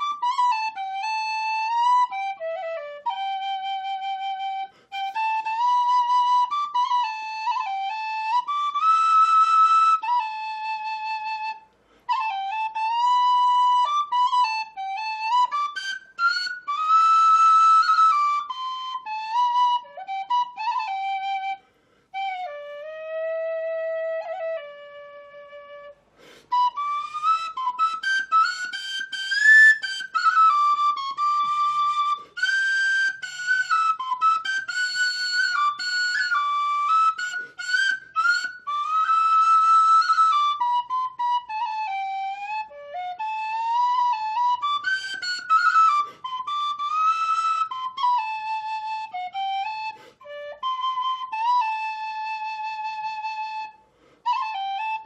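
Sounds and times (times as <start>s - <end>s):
tin whistle slow melody: 0.0s - 55.0s.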